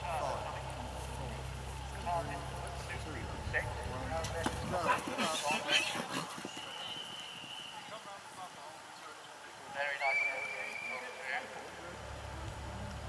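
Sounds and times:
voices in background: 0:00.0 - 0:13.0
horse hoofbeats on grass: 0:00.1 - 0:07.8.

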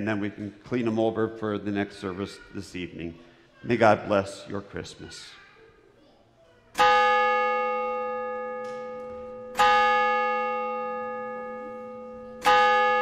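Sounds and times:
bell tolling: 0:06.8 - 0:13.0.

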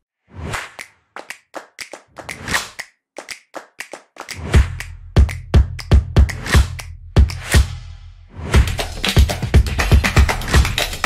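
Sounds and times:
sharp clicks and taps: 0:01.2 - 0:06.9
electronic music with deep bass: 0:04.4 - 0:11.0.

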